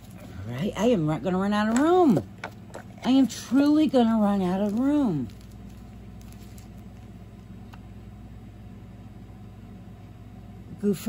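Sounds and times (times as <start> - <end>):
low steady hum: 0.0 - 11.0
plastic packet crinkling: 2.9 - 7.4.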